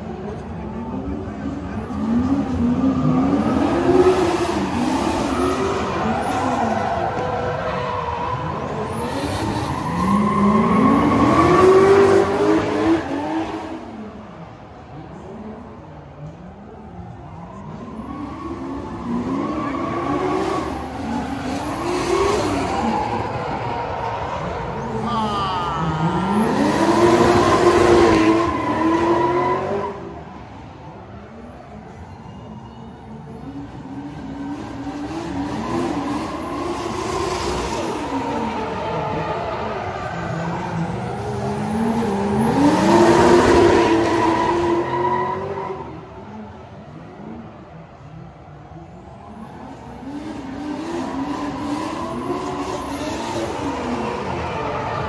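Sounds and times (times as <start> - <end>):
car engines revving: 0.0 - 55.0.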